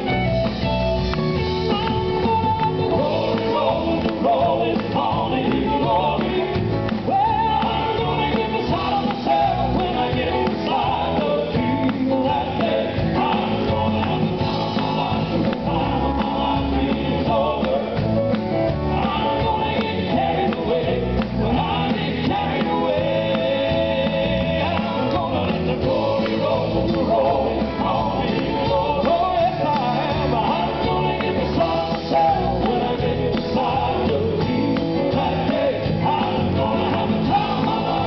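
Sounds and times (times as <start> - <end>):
drums keeping a steady beat: 0.0 - 38.0
electric guitar: 0.0 - 38.0
live band playing: 0.0 - 38.0
vocal quartet singing in harmony: 1.6 - 38.0.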